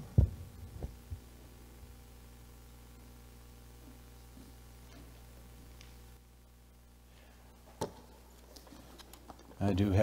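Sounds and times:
microphone handling thumps: 0.0 - 1.2
steady low hum: 0.0 - 10.0.

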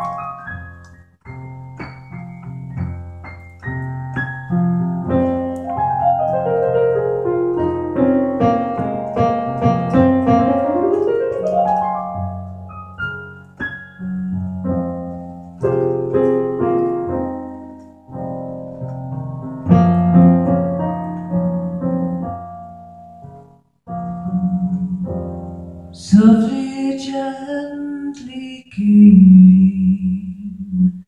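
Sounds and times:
slow solo jazz piano: 0.0 - 27.1.

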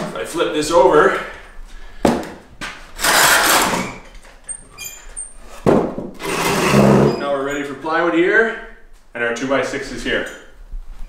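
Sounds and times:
wood scraping and knocking on floor: 5.6 - 7.2.

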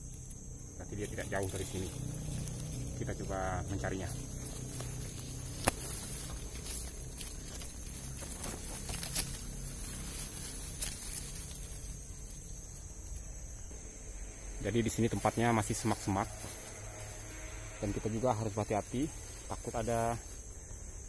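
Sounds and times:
high-pitched insect calls: 0.0 - 21.0
footsteps rustling through undergrowth: 0.8 - 12.9, 14.8 - 20.6
twig snaps: 1.4 - 11.9.

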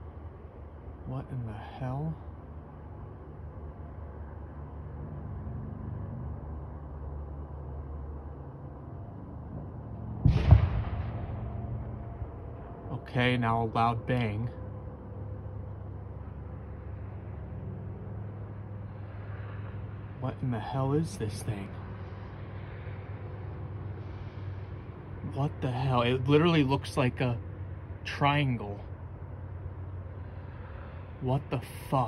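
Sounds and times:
low mechanical rumble: 0.0 - 32.0.

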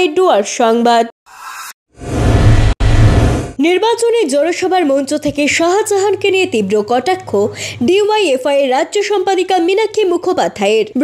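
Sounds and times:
faint swish: 1.6 - 3.6
whoosh with deep rumble: 2.0 - 3.6.

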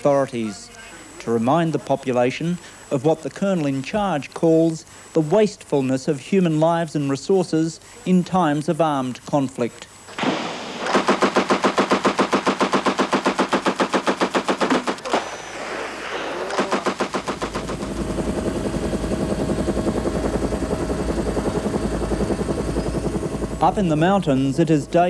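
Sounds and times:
helicopter rotor beating: 10.8 - 25.0.

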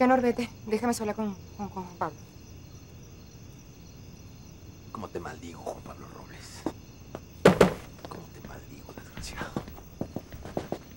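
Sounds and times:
footsteps on hard floor: 7.1 - 10.9.

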